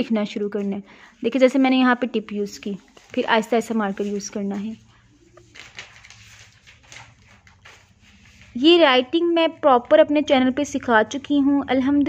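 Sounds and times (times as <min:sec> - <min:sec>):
marker scratching on paper: 0:01.3 - 0:04.8.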